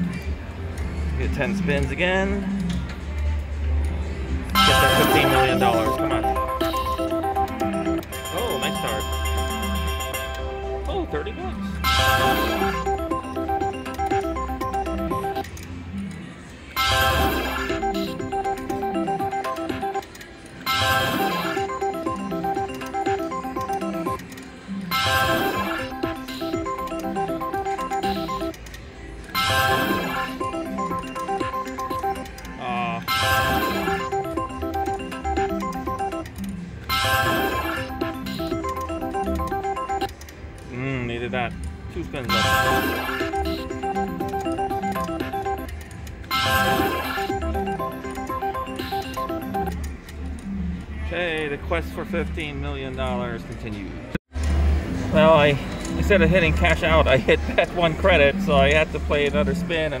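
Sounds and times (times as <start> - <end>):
slot machine spinning: 4.5 - 16.1, 16.7 - 40.5, 41.1 - 50.8, 54.4 - 60.0
electronic tones: 4.6 - 16.1, 16.8 - 28.6, 29.3 - 40.2, 42.2 - 50.7.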